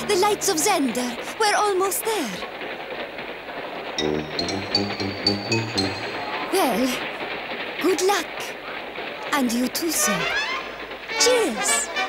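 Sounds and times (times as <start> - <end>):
cartoon music with pulsing rhythm: 4.0 - 6.5.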